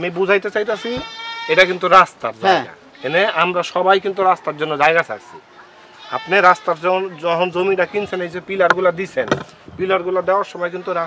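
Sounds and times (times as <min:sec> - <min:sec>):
men talking: 0:00.0 - 0:05.3, 0:06.2 - 0:11.0.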